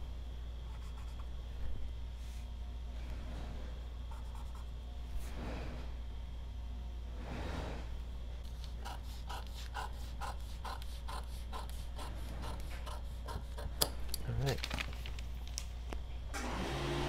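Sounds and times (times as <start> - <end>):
paper rustling: 14.3 - 15.8.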